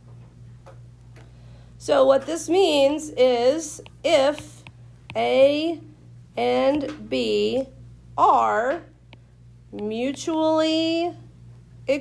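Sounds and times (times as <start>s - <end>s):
low steady hum: 0.0s - 12.0s
woman speaking: 1.8s - 9.0s, 9.7s - 11.3s.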